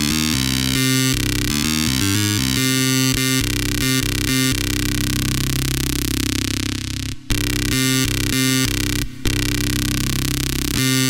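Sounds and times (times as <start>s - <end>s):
synthesizer lead notes: 0.0s - 11.0s.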